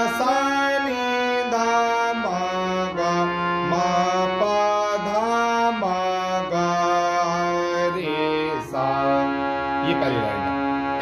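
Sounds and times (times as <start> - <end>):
harmonium playing slow melody: 0.0 - 11.0.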